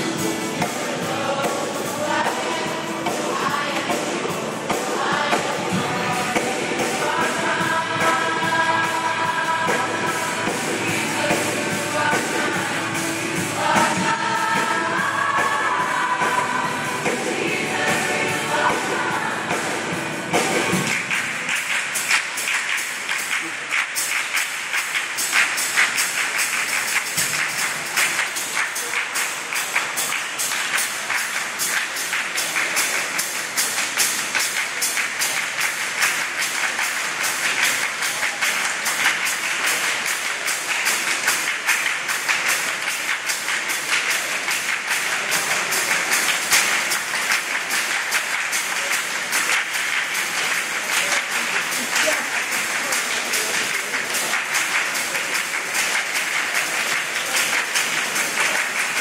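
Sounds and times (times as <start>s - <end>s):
background music: 0.0s - 59.0s
choir clapping hands: 0.0s - 59.0s.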